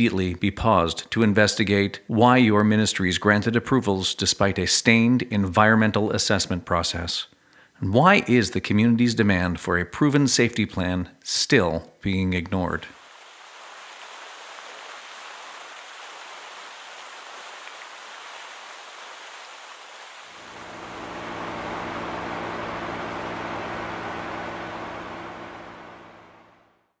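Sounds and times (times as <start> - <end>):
rushing water: 13.0 - 20.6
deep rumble with low hum: 20.4 - 26.9.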